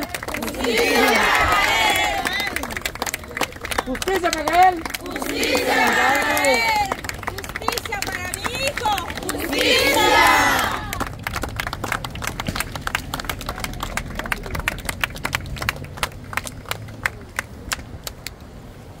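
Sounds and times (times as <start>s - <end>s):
crowd chanting: 0.0s - 3.1s, 4.8s - 7.1s, 8.8s - 11.0s
people clapping: 0.0s - 18.4s.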